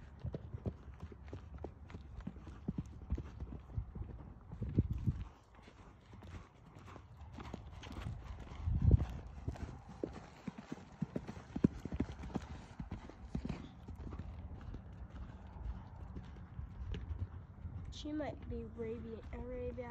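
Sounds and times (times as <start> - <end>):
horse hooves clip-clopping: 0.0 - 19.9.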